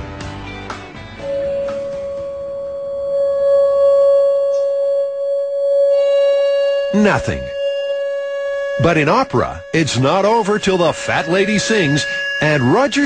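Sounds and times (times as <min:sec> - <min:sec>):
fainter higher tones: 0:01.2 - 0:13.0
pure tone through speaker: 0:01.2 - 0:13.0.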